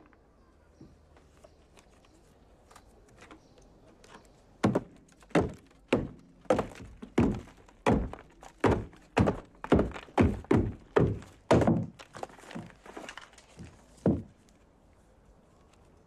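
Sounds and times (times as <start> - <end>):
hammer breaking plaster wall: 4.6 - 12.7.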